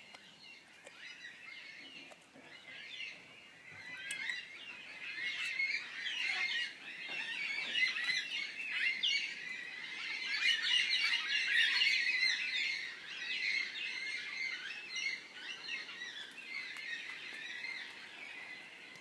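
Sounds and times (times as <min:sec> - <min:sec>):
many birds chirping: 0:00.0 - 0:19.0.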